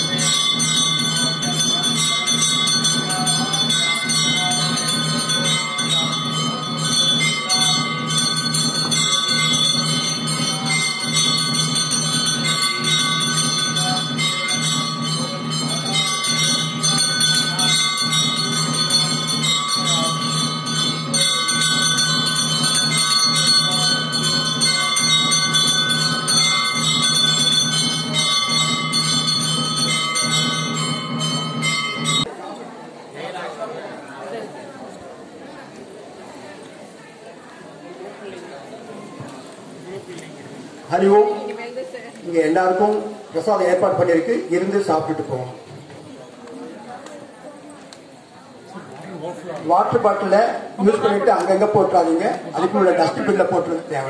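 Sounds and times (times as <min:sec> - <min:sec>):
low pulsing beat: 0:00.0 - 0:32.3
bells ringing: 0:00.0 - 0:32.6.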